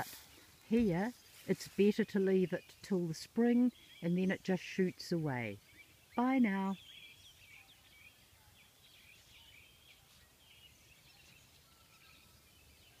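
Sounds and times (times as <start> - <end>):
faint bird chirps and whistles: 5.6 - 13.0.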